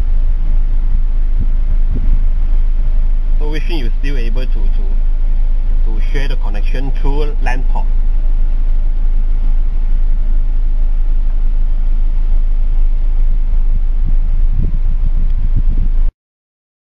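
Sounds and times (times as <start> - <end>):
car cabin rumble: 0.0 - 16.1.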